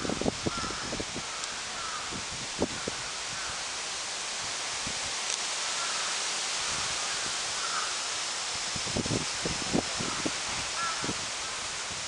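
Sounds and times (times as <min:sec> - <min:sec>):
distant crows cawing: 0:00.0 - 0:04.2, 0:05.4 - 0:08.6, 0:09.9 - 0:11.8
steady outdoor hiss: 0:00.0 - 0:12.0.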